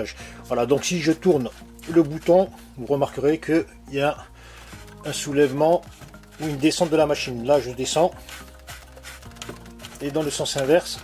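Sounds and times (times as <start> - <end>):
knob ticking and rubbing: 4.6 - 11.0.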